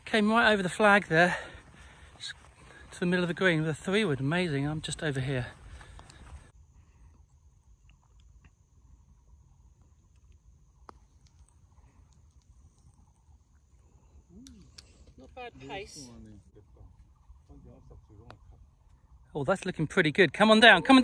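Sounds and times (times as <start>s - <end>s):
faint clicks: 9.8s - 15.2s.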